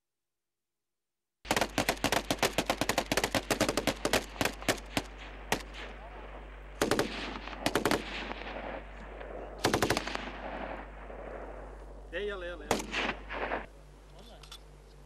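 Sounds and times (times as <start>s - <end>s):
automatic gunfire bursts: 1.5s - 11.5s, 12.6s - 13.7s.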